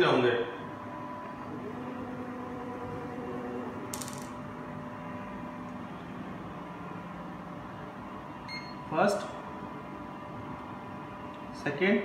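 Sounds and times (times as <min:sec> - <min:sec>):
machine drive hum: 0:00.0 - 0:12.0.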